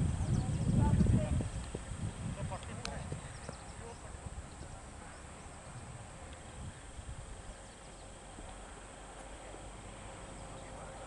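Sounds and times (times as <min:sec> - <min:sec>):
distant players' voices: 0:00.2 - 0:11.0.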